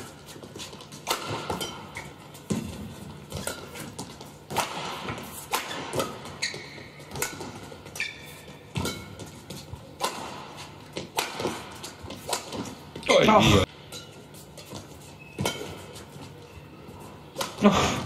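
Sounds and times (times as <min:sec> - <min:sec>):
shoes squeaking on court floor: 0:00.0 - 0:17.7
rackets striking shuttlecock: 0:00.8 - 0:12.8.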